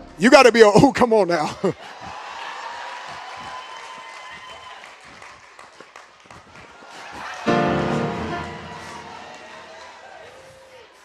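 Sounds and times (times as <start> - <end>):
congregation applauding: 1.8 - 11.0.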